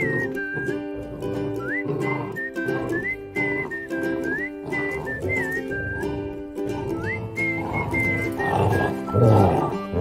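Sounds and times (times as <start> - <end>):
dogs growling: 0.0 - 10.0
music with whistled melody: 0.0 - 10.0.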